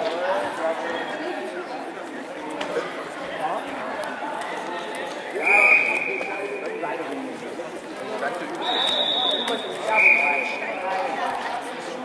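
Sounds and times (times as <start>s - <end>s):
voices talking and calling out: 0.0s - 12.0s.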